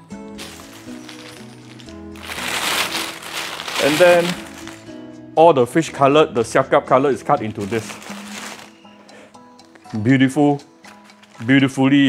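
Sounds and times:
background music: 0.0 - 12.0
plastic bag rustling: 0.4 - 5.0, 7.4 - 8.9.

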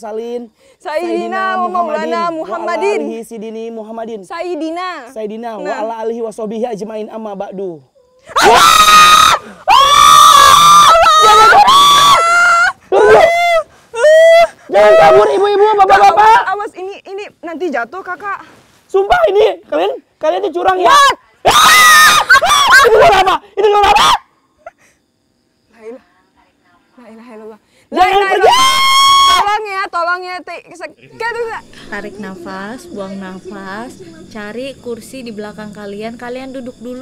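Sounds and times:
woman screaming: 1.0 - 3.0, 8.3 - 16.5, 20.8 - 24.2, 28.0 - 29.7
woman shouting in fright: 1.0 - 3.1, 8.3 - 16.6, 20.8 - 24.2, 27.9 - 29.8.

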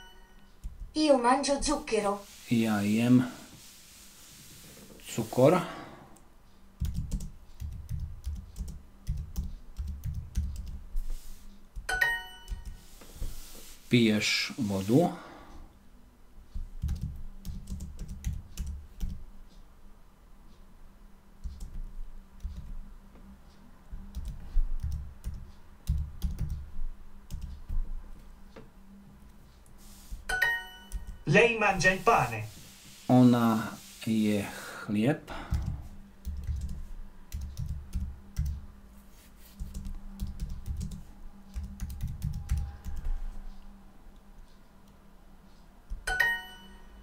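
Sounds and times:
keyboard typing: 6.8 - 12.9, 16.6 - 19.2, 21.4 - 22.8, 24.0 - 27.9, 30.3 - 31.2, 35.5 - 38.6, 39.5 - 43.2.

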